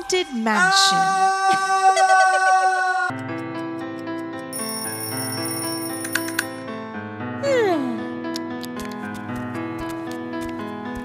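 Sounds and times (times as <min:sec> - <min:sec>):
alarm clock bell ringing: 0:04.5 - 0:06.6.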